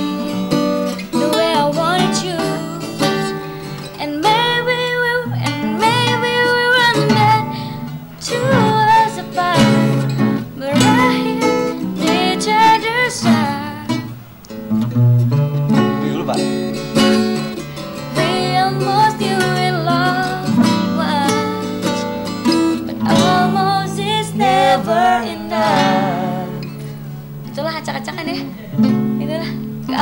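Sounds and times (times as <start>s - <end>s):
acoustic guitar strumming chords: 0.0s - 30.0s
person singing: 1.0s - 14.1s, 16.3s - 26.9s.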